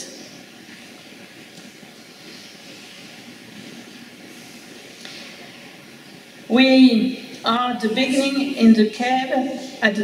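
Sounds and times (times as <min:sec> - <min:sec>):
room tone hiss: 0:00.0 - 0:10.0.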